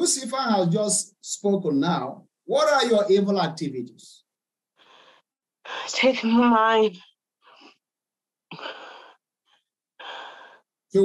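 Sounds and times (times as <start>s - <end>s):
woman breathing: 4.8s - 6.0s, 10.0s - 10.7s.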